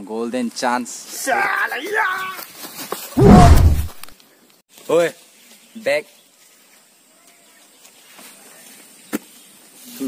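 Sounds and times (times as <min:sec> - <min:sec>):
deep hit sound: 0:03.2 - 0:04.0.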